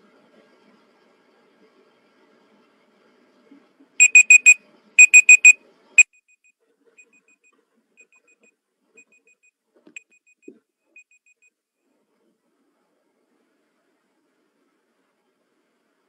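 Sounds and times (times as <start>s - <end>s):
high electronic alarm beeps: 4.0s - 5.6s.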